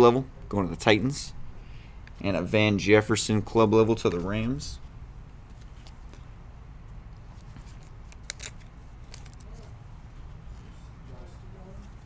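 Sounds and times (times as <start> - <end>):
low room hum: 0.0 - 12.0
foil card packs crinkling: 7.7 - 9.6.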